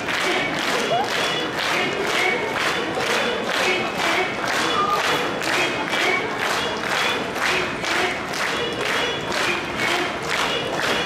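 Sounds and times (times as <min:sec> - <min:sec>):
audience clapping in unison: 0:00.0 - 0:11.0
background show music: 0:00.0 - 0:11.0.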